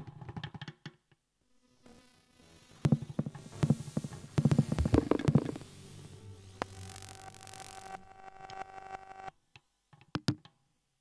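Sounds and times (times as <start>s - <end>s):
low hum: 2.6s - 9.3s
soft percussive taps and knocks: 2.9s - 5.6s, 9.6s - 10.5s.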